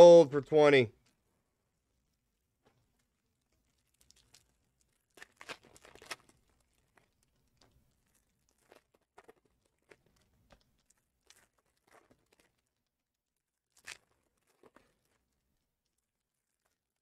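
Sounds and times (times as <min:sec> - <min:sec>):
plastic wrappers crinkling: 0:03.6 - 0:07.2.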